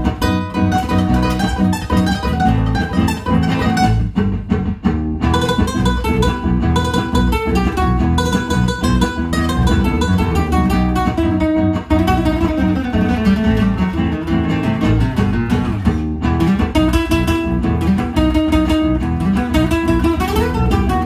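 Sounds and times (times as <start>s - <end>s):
fingerstyle nylon-string guitar: 0.0s - 21.0s.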